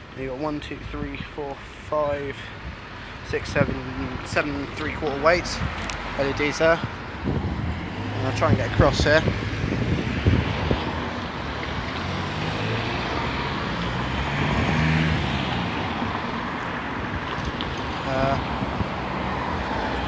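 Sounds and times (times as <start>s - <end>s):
cars driving past: 1.6s - 20.0s.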